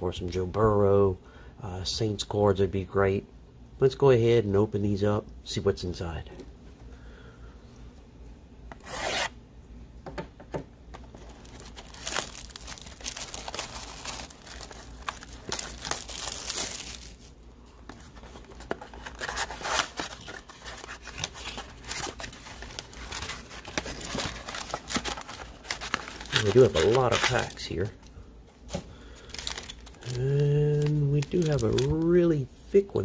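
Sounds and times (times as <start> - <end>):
plastic wrap scraping and crinkling: 11.1 - 17.4, 18.0 - 27.9, 29.3 - 32.4.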